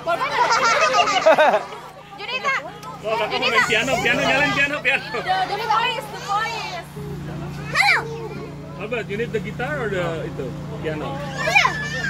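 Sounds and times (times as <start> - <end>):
children talking and calling out: 0.0 - 12.0
child high-pitched shout: 7.7 - 8.5, 11.2 - 12.0.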